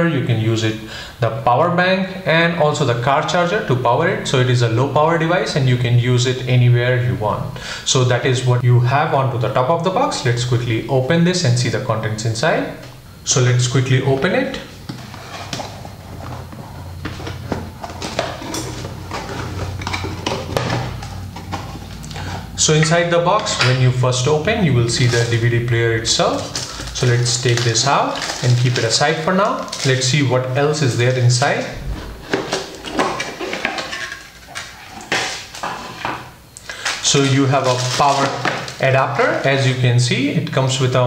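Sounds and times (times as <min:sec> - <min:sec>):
low steady hum: 0:00.0 - 0:41.0
cardboard and plastic rustling: 0:14.8 - 0:22.5, 0:24.8 - 0:25.6, 0:26.2 - 0:30.2, 0:31.0 - 0:39.6.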